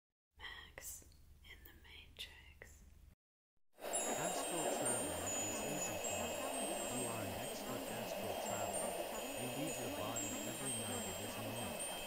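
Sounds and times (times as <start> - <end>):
faint whispering: 0.4 - 2.8, 4.0 - 12.0
ambient music: 3.8 - 12.0
high tinkling chimes: 3.8 - 12.0
low hum: 3.8 - 12.0
many overlapping voices: 3.8 - 12.0.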